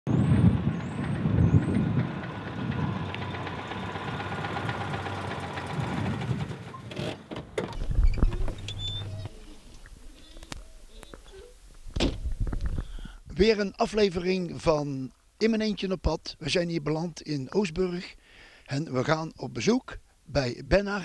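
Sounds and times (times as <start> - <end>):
car engine running: 0.7 - 6.8.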